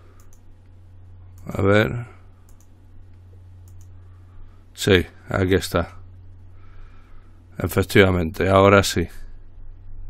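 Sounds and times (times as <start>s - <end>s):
steady low hum: 0.0s - 10.0s
computer mouse clicks: 0.2s - 0.8s, 2.5s - 4.0s.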